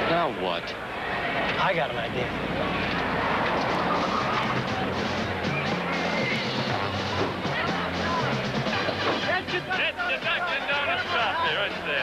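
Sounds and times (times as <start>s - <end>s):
pickup truck engine roaring: 0.0s - 10.0s.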